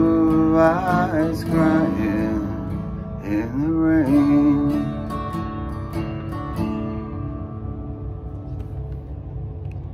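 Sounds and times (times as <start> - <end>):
man singing: 0.0 - 5.4
acoustic guitar ballad: 0.0 - 9.9.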